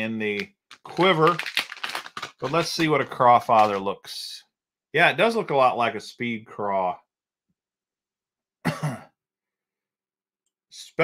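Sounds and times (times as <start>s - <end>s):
man coughing: 8.6s - 9.2s.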